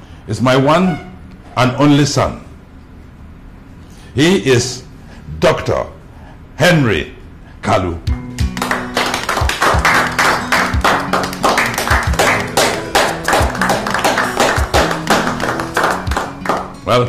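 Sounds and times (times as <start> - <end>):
background music with low notes: 7.8 - 17.0
people clapping: 8.3 - 16.8.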